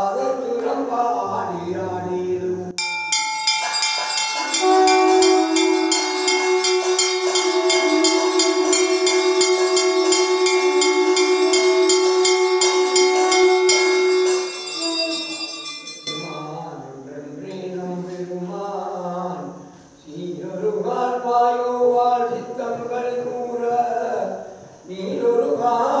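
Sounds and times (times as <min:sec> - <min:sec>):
temple bells ringing rapidly: 0:02.8 - 0:16.6
steady horn-like tone: 0:04.4 - 0:15.4.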